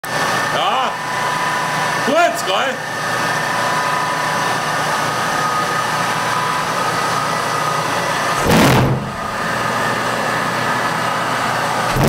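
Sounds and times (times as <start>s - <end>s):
loud machine noise with whining: 0.0s - 12.0s.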